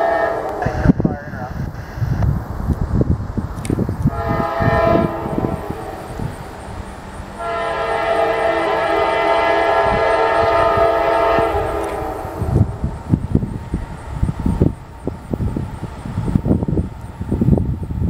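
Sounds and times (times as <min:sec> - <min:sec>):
train air horn blasts: 0:00.0 - 0:01.0, 0:04.1 - 0:06.4, 0:07.3 - 0:12.8
wind rumbling on microphone: 0:00.0 - 0:18.0.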